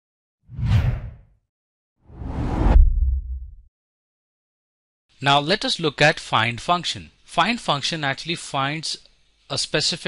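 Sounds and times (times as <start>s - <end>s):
whoosh sound effects: 2.1s - 3.6s
low rumble: 2.2s - 3.7s.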